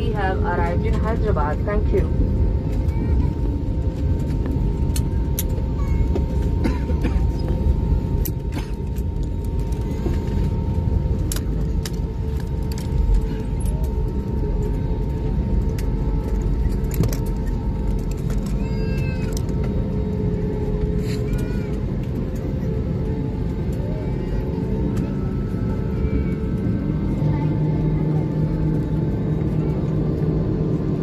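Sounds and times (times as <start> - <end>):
jet engine hum and rumble: 0.0 - 31.0.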